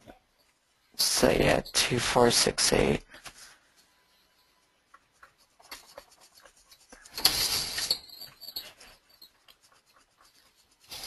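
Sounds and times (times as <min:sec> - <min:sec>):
pen scratching on surface: 0:04.9 - 0:07.8, 0:09.2 - 0:11.0.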